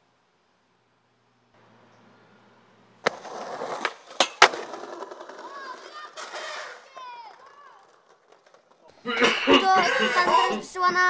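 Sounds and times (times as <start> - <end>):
skateboard wheels rolling on concrete: 0.0 - 11.0
skateboard clacking on ground: 3.0 - 8.9.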